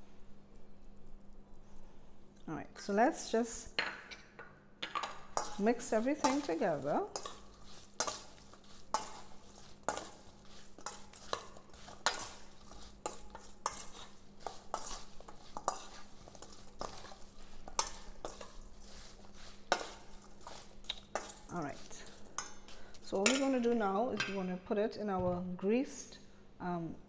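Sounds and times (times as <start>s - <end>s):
metal spoon clinking on steel bowl: 4.8s - 10.2s, 19.7s - 24.4s.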